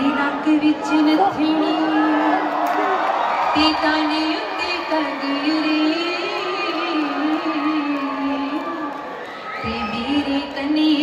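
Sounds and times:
woman singing slow melody: 3.5 - 11.0.

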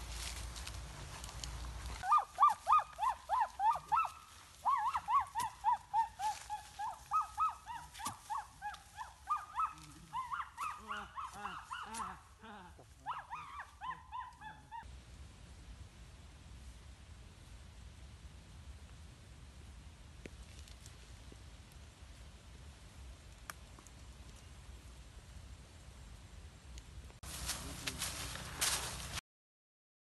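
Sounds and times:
animal calls with short arched notes: 2.0 - 12.2
lower animal voice calling: 2.0 - 14.8.

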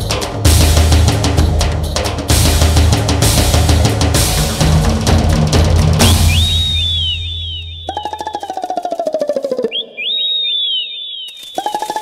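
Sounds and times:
falling fluttering whistle tone: 6.0 - 12.0
quick high falling whistles: 6.0 - 12.0.

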